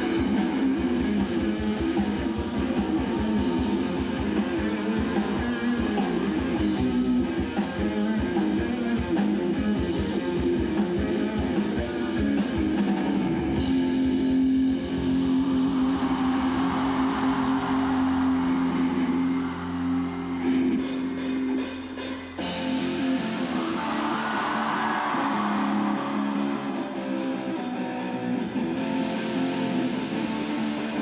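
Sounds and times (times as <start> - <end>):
live band with electric guitar: 0.0 - 31.0.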